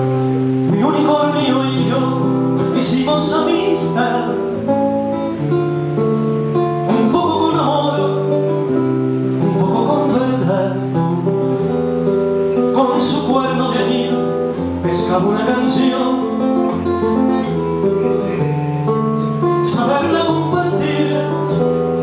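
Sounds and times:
acoustic guitar playing: 0:00.0 - 0:22.0.

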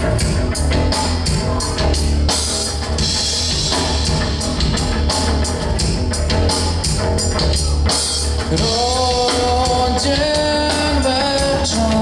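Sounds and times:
bass guitar: 0:00.0 - 0:12.0
drum kit with ringing cymbals: 0:00.0 - 0:12.0
electric guitars: 0:00.0 - 0:12.0.

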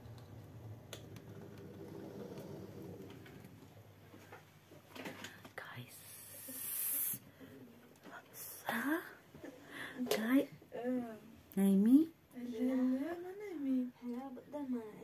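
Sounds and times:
hushed whispering: 0:05.2 - 0:07.3
breathy hiss: 0:05.3 - 0:07.7.

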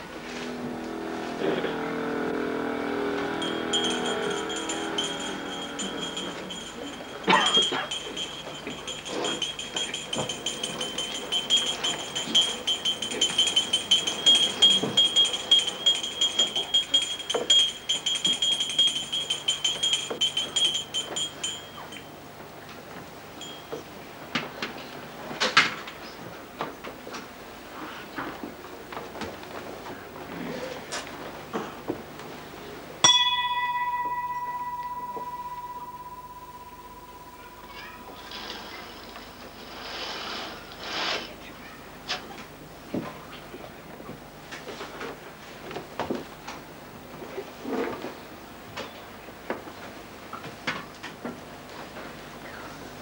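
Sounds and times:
small metal bell ringing rapidly: 0:03.0 - 0:22.2, 0:23.4 - 0:23.8, 0:33.0 - 0:39.1.

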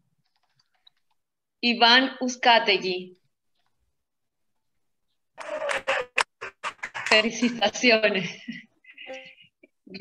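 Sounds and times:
woman speaking over video call: 0:01.6 - 0:03.3, 0:07.1 - 0:10.0.

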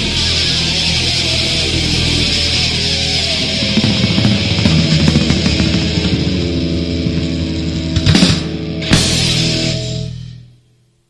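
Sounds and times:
bass notes: 0:01.2 - 0:10.5
electric guitar chord ringing: 0:01.6 - 0:10.5
drumming: 0:03.3 - 0:09.4.

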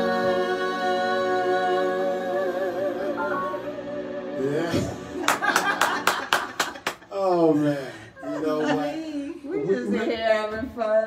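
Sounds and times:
song: 0:00.0 - 0:06.4
hand claps: 0:05.3 - 0:07.1.

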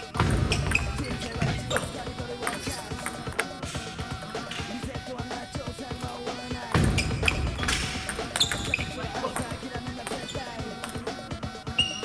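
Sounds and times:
background voices: 0:00.0 - 0:11.9
table tennis balls clicking: 0:00.2 - 0:04.8, 0:06.7 - 0:12.0.

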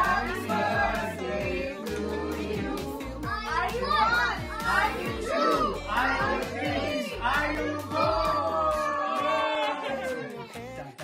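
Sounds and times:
background music with bass: 0:00.0 - 0:11.0
children calling and chattering: 0:03.0 - 0:11.0.

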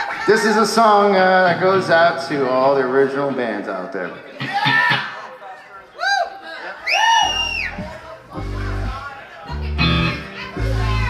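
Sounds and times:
high bending guitar notes: 0:01.2 - 0:03.4, 0:04.3 - 0:05.3, 0:07.7 - 0:11.0
electric bass guitar notes: 0:01.4 - 0:02.8, 0:07.7 - 0:11.0.

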